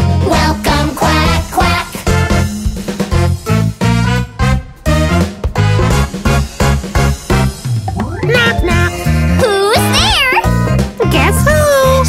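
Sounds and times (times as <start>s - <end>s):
cartoon voices singing: 0.0s - 2.1s
children's song backing music: 0.0s - 3.1s, 6.4s - 12.0s.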